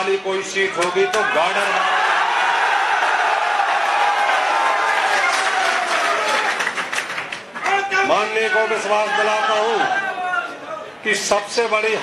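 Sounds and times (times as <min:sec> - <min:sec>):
crowd cheering and shouting: 0:00.8 - 0:06.6, 0:07.6 - 0:11.0.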